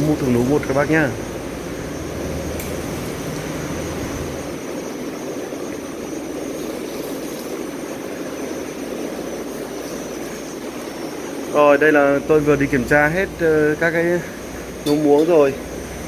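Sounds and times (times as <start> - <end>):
steady mechanical noise: 0.0 - 16.0.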